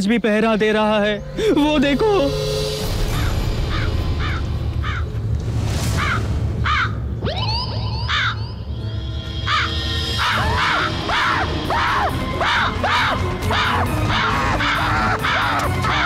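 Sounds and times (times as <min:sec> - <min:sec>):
low music drone: 0:00.8 - 0:05.8, 0:06.4 - 0:16.0
crow cawing: 0:03.0 - 0:05.2, 0:06.0 - 0:07.0, 0:08.1 - 0:08.4, 0:09.4 - 0:16.0.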